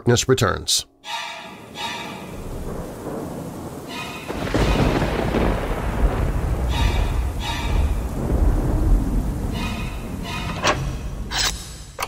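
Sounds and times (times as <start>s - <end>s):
sparse dark music: 0.9s - 12.0s
deep rolling rumble: 2.3s - 12.0s.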